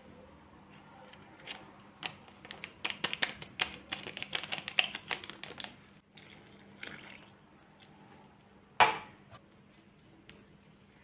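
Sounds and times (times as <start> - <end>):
paper sachet tapped and shaken: 1.4 - 5.8.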